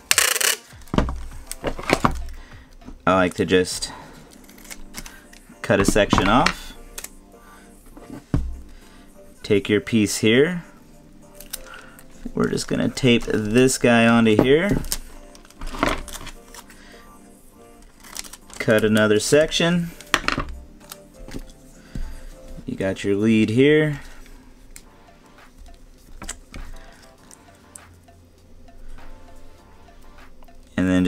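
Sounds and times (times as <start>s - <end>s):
tape dispenser clicks: 0.0s - 0.9s
plastic tape crinkle: 0.0s - 2.4s, 4.2s - 7.2s, 11.3s - 13.9s, 14.6s - 16.8s, 17.8s - 19.2s, 20.0s - 21.6s
background music: 0.0s - 31.0s.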